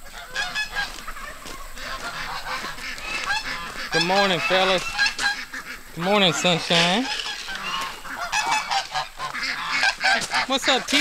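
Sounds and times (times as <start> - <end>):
flock of fowl honking: 0.0 - 11.0.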